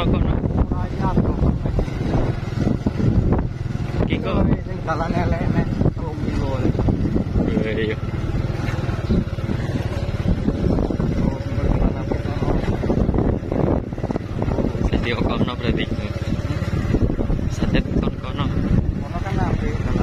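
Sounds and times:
knocks and rumble from bumps: 0.0 - 20.0
motorcycle engine running: 0.0 - 20.0.

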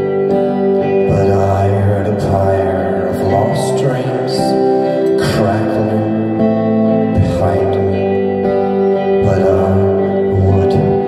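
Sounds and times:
acoustic guitar droning: 0.0 - 11.0
electric guitar droning: 0.0 - 11.0.

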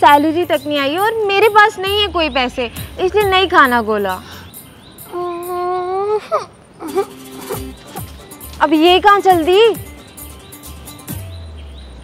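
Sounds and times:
woman humming a steady note: 5.1 - 8.1.

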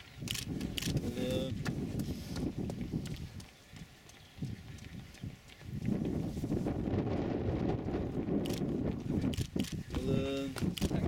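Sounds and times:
wind rumbling on microphone: 0.0 - 11.0
running shoes slapping on tarmac: 0.2 - 7.0, 8.6 - 11.0.

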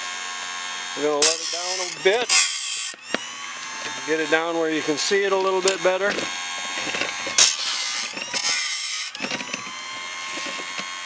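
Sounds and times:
grinder motor whine: 0.0 - 11.0
rasping grinding bursts: 0.7 - 11.0.

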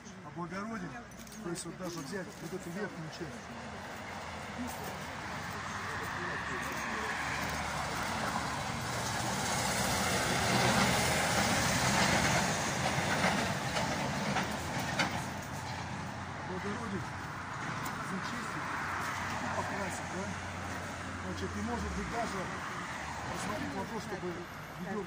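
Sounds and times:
heavy vehicle passing: 2.6 - 25.0.

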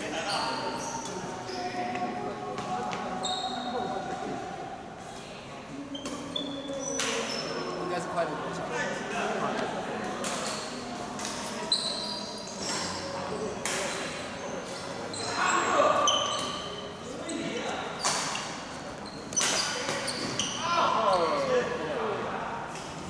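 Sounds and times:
shoes squeaking on court floor: 0.0 - 4.2, 5.9 - 7.8, 10.2 - 21.6.

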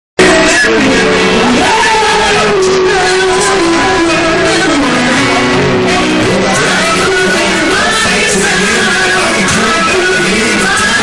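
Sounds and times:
loud distorted live music: 0.2 - 11.0.

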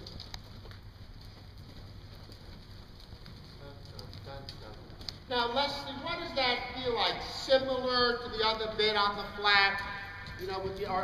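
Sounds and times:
horse hooves on soft footing: 0.0 - 11.0.

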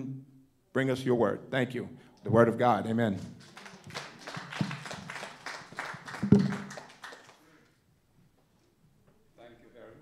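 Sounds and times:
congregation clapping: 3.2 - 7.7.

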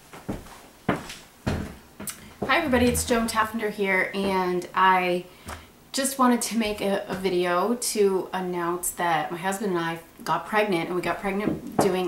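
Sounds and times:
footsteps on hard floor: 0.1 - 3.6, 4.2 - 4.5.

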